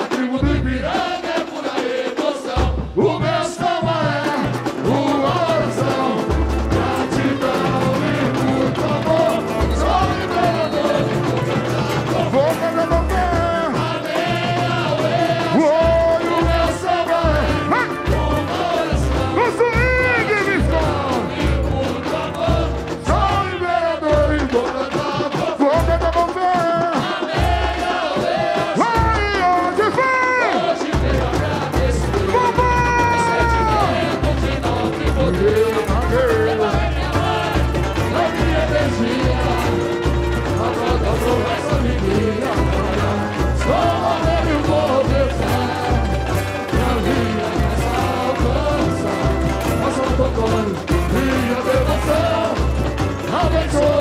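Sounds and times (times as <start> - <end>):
samba drum section: 0.0 - 54.0
voices singing: 0.0 - 54.0.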